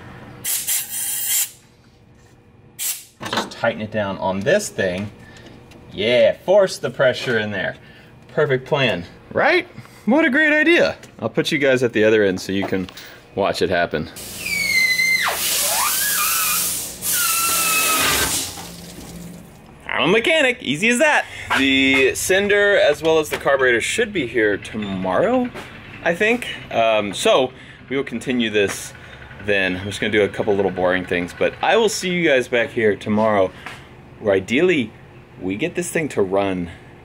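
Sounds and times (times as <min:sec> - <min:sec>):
compressed air blow gun hiss: 0:00.4 - 0:01.6, 0:14.2 - 0:18.7
high whistling squeal: 0:14.4 - 0:18.3.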